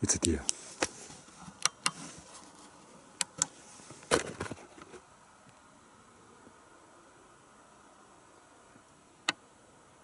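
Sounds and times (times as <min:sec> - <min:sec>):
faint steady hiss: 0:00.0 - 0:10.0
rustle: 0:00.0 - 0:10.0.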